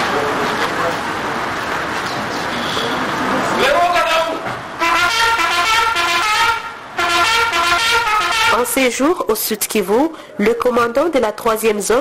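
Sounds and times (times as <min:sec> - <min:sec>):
bugle call: 0:04.8 - 0:08.7.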